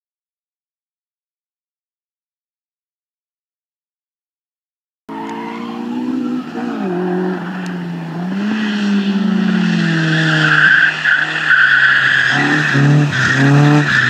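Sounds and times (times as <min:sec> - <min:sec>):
car engine revving: 0:05.1 - 0:14.0
tyres squealing: 0:05.1 - 0:14.0.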